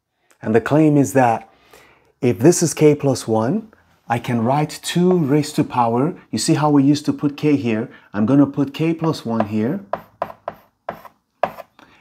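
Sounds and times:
chalk writing on blackboard: 9.4s - 11.8s.

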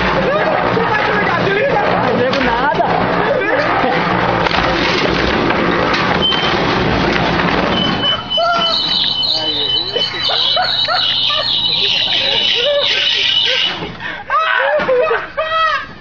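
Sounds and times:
concrete mixer humming: 0.0s - 14.3s
steady high-pitched tone: 7.7s - 13.9s
excited voices: 7.9s - 15.8s
crowd shouting: 8.1s - 13.7s.

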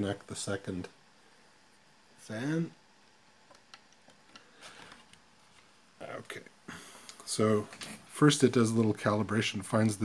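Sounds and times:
soft rustle of wiring: 3.0s - 6.4s.

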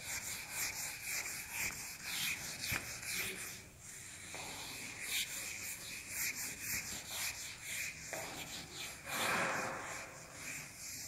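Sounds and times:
eraser rubbing on whiteboard: 0.0s - 11.0s.

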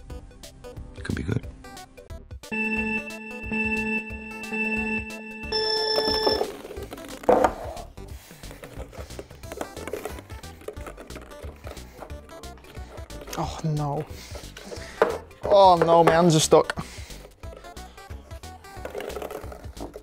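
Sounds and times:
electronic countdown beeps: 2.5s - 6.5s
plastic balls knocking: 6.0s - 7.8s, 8.6s - 13.4s, 14.5s - 16.4s, 18.7s - 20.0s.

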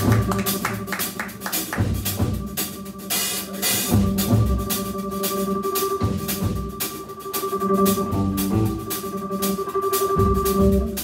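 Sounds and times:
drum kit and cymbals: 0.0s - 11.0s
organ sustained chords: 0.0s - 11.0s.

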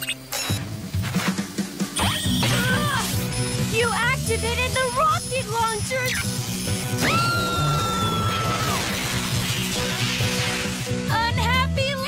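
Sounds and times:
cartoon soundtrack music: 1.3s - 11.8s
rushing noise: 6.8s - 11.1s.

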